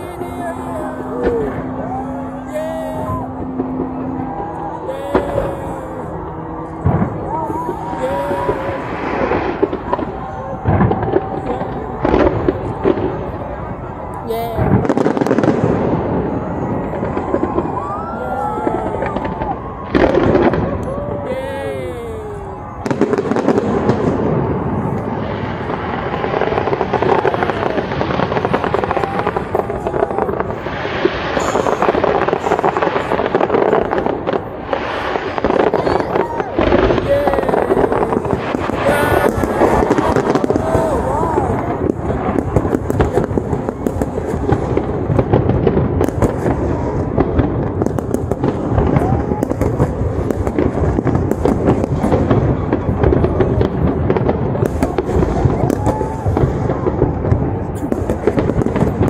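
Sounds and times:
crowd voices: 0.0 - 59.0
fireworks bursting: 0.0 - 59.0.

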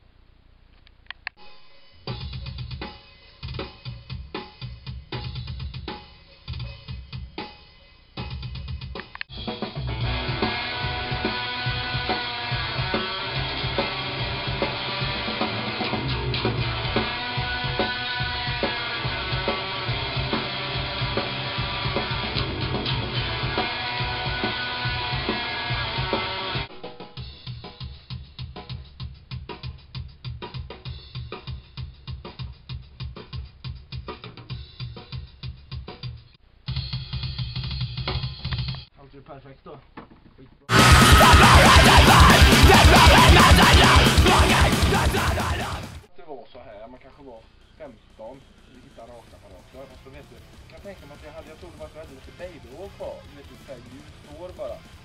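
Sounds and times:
electric guitar: 9.3 - 26.7, 40.7 - 46.1
death metal band playing: 9.3 - 27.6, 40.7 - 46.1, 47.1 - 55.0
drum kit hits: 40.7 - 46.1.

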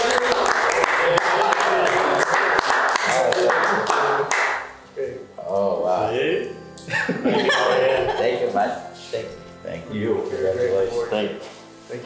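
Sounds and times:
small group clapping: 0.0 - 4.9.

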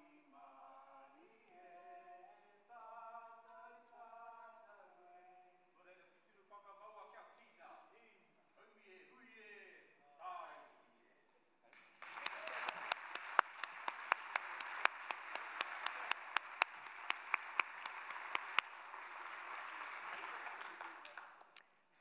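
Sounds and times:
close sharp hand claps: 11.7 - 21.8
audience applauding: 11.8 - 21.7.

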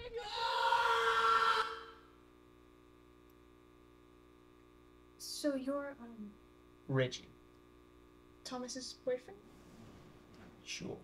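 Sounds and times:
faint electrical hum: 0.0 - 11.0
man screaming in pain: 0.2 - 2.0.

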